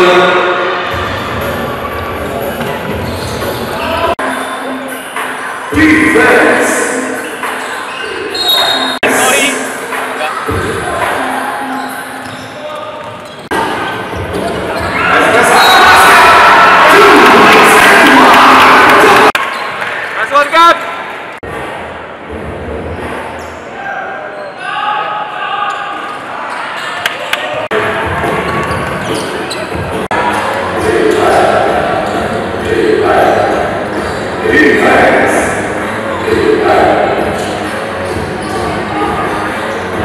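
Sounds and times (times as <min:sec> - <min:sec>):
voices echoing in hall: 0:00.0 - 0:40.0.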